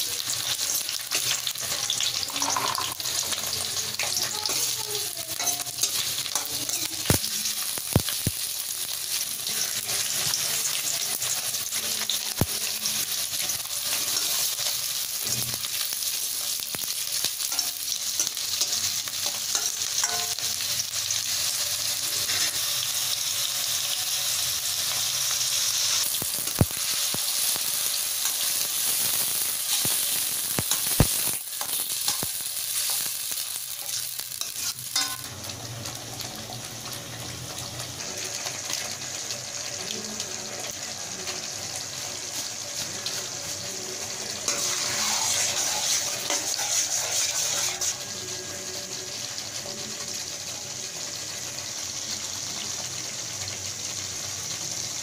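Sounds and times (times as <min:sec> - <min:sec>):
vegetables sizzling in a pan: 0:00.0 - 0:55.0
metal spatula stirring: 0:17.4 - 0:20.5, 0:29.7 - 0:35.3, 0:44.5 - 0:48.0.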